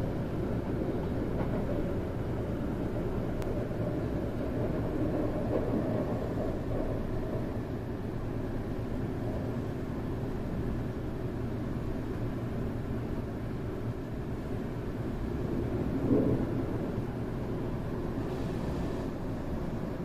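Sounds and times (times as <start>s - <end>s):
train cabin low rumble: 0.0s - 20.0s.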